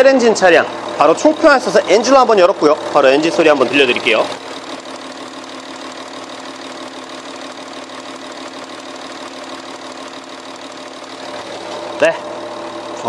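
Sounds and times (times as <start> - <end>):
diesel engine idling: 0.0 - 13.0.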